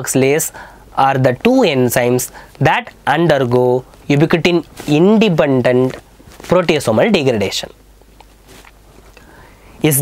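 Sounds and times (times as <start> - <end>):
man speaking: 0.0 - 7.8, 9.8 - 10.0
faint background noise: 0.0 - 10.0.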